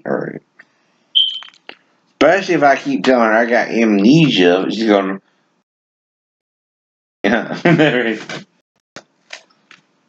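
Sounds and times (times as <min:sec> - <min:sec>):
man speaking: 0:00.0 - 0:00.4, 0:02.2 - 0:05.2, 0:07.3 - 0:08.5
short high-pitched beep: 0:01.2 - 0:01.6.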